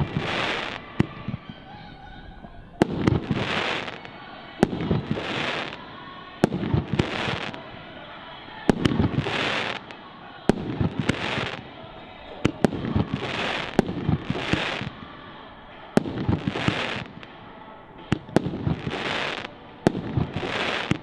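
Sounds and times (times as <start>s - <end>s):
fireworks hiss: 0.0s - 1.6s, 2.8s - 21.0s
fireworks bangs: 0.0s - 21.0s.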